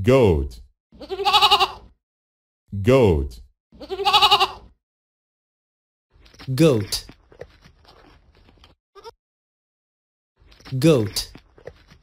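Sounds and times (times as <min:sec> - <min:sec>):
goat bleating: 0:01.0 - 0:01.9, 0:03.8 - 0:04.7, 0:09.0 - 0:09.2.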